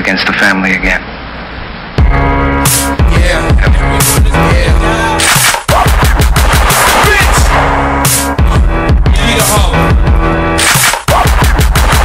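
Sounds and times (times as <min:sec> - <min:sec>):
hip-hop beat: 0:02.0 - 0:12.0
machine-gun fire sound effect: 0:05.3 - 0:07.6, 0:10.6 - 0:12.0.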